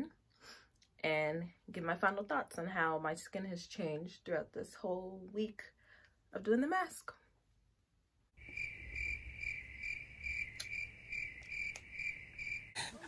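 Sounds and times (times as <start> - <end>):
crickets chirping: 8.4 - 12.8.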